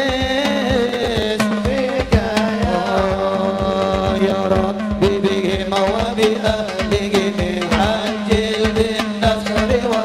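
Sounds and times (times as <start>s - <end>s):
hand-drum strokes: 0.0s - 10.0s
man singing into a microphone: 0.0s - 10.0s.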